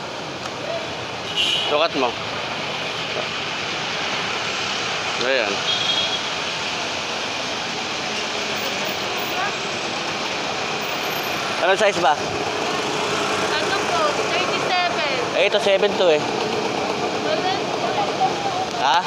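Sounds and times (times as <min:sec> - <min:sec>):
road traffic engines: 0:00.0 - 0:19.0.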